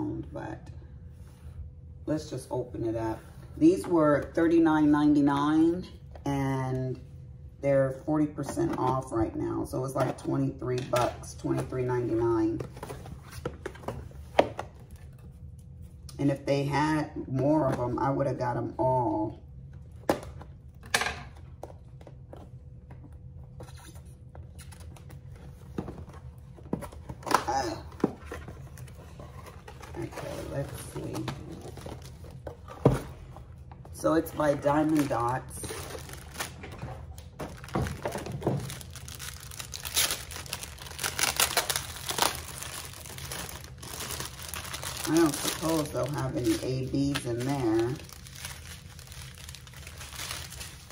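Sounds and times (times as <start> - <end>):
person speaking: 29.9 - 31.7, 45.0 - 48.1
plastic bags crinkling: 34.0 - 50.9.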